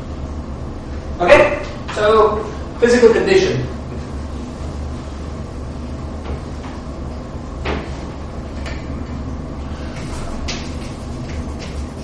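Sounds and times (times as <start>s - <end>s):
low room hum: 0.0s - 12.0s
duster swishing on blackboard: 9.8s - 12.0s.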